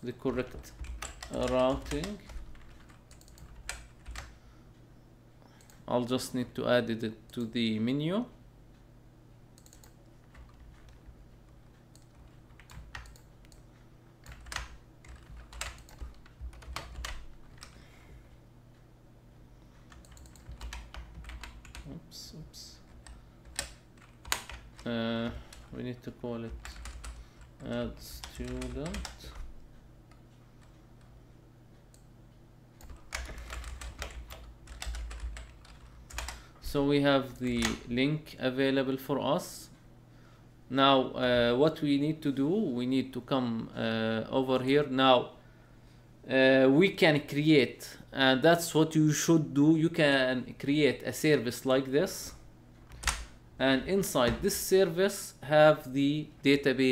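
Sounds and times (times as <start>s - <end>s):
typing on computer keyboard: 0.5s - 4.3s, 11.9s - 13.6s, 14.2s - 17.8s, 19.9s - 21.9s, 22.9s - 24.9s, 26.5s - 27.2s, 28.1s - 29.4s, 32.8s - 36.4s, 52.9s - 53.3s.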